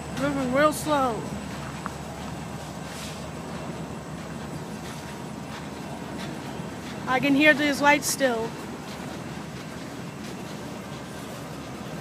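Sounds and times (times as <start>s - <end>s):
train wheels on rails: 0.0s - 12.0s.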